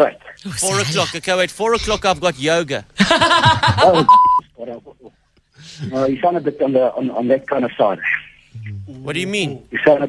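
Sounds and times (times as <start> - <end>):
censor bleep: 4.1 - 4.4.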